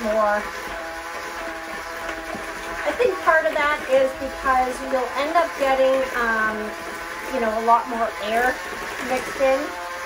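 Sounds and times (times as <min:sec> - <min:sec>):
electric hand mixer whining: 0:00.0 - 0:10.0.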